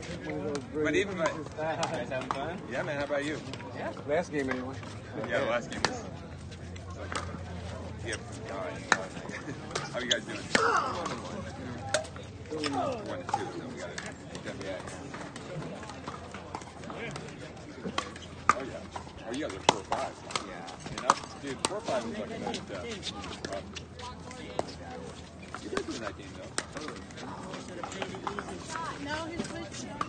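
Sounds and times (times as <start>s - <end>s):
murmur of voices: 0.0s - 30.0s.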